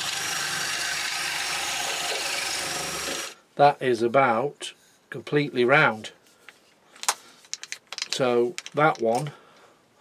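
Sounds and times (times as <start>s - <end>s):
blade shaving wood: 0.0s - 3.4s
cordless drill running: 0.0s - 3.4s.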